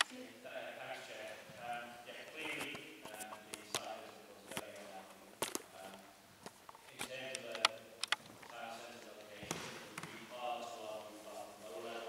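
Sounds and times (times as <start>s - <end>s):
quiet speech in a hall: 0.0s - 12.0s.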